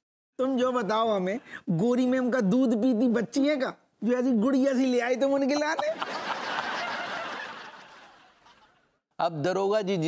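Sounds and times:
crowd laughing on laugh track: 5.6s - 9.0s.

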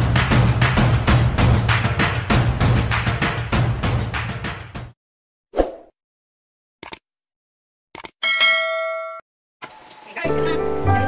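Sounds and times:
notification bell ding: 8.2s - 9.2s.

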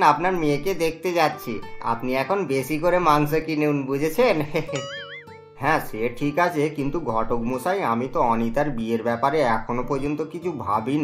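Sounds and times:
wobbling synthetic tone: 4.8s - 5.3s.

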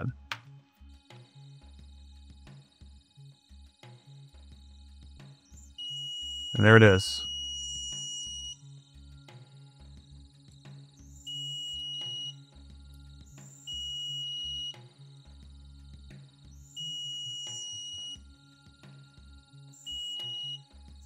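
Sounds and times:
high steady beeps: 5.7s - 8.6s, 11.1s - 12.4s, 13.4s - 14.8s, 16.6s - 18.2s, 19.8s - 20.6s.

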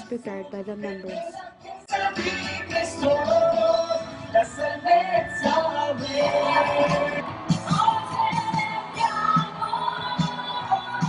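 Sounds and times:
backing music: 0.0s - 11.0s
vocal ensemble singing: 1.0s - 11.0s.

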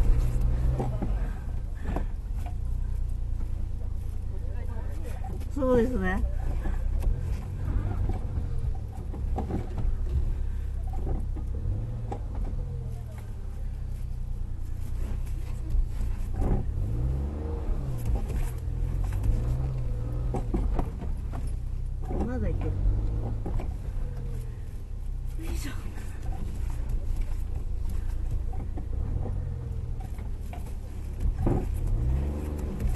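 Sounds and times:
car engine heard from inside cabin: 0.0s - 32.9s.

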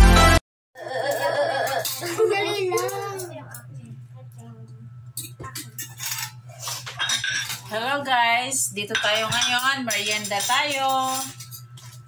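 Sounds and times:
spoons and plates clinking: 1.7s - 3.3s, 5.2s - 7.8s, 8.9s - 12.0s.

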